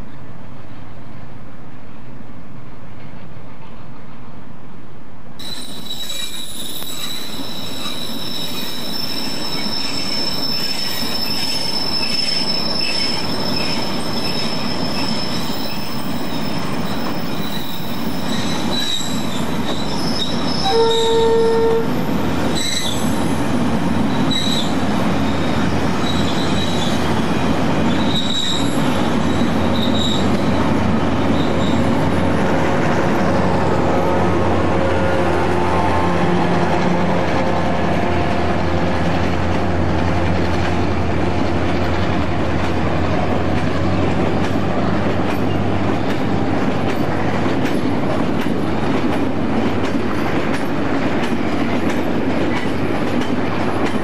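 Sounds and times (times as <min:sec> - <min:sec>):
train wheels rumbling on rails: 0:05.3 - 0:54.0
high-pitched wheel squeal: 0:05.4 - 0:23.2, 0:24.1 - 0:27.1, 0:27.9 - 0:30.5, 0:31.2 - 0:32.2
train horn blast: 0:20.6 - 0:22.0, 0:33.8 - 0:38.9.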